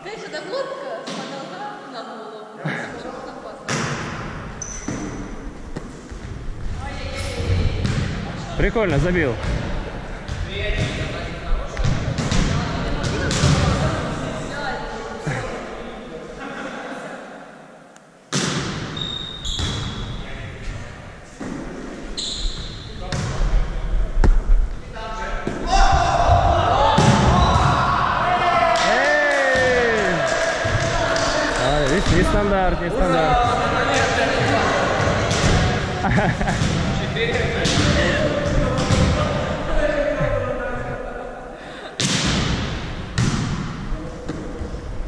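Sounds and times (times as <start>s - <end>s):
players' voices and calls: 2.5s - 45.0s
ball bouncing on floor: 24.2s - 24.7s.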